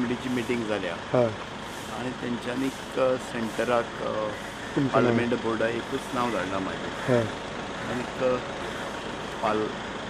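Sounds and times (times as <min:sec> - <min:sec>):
man speaking: 0:00.0 - 0:08.4, 0:09.4 - 0:09.7
road traffic hum: 0:00.0 - 0:10.0.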